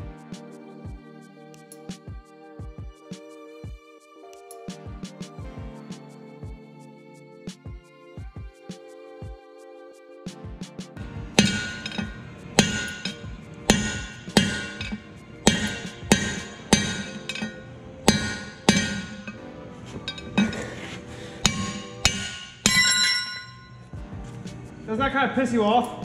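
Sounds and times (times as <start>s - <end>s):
hammer striking steel: 11.0s - 24.0s.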